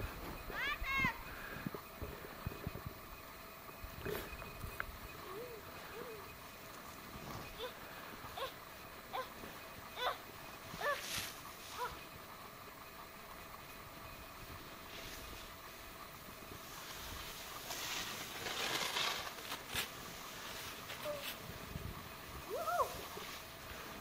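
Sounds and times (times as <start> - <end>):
snowboard sliding over snow: 16.2 - 24.0.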